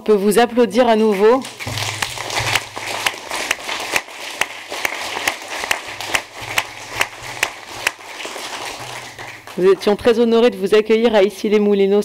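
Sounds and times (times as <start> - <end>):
small audience applauding: 1.0 - 10.1.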